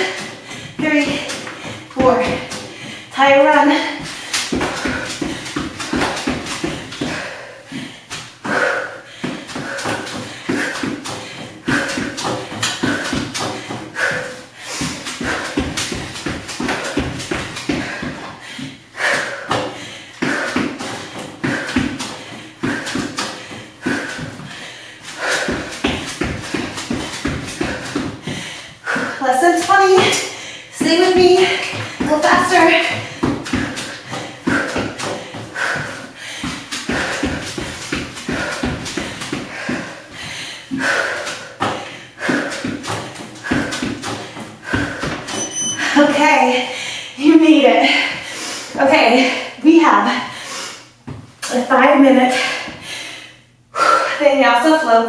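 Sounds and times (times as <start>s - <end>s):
heavy breathing: 0.0s - 51.0s, 52.1s - 54.3s.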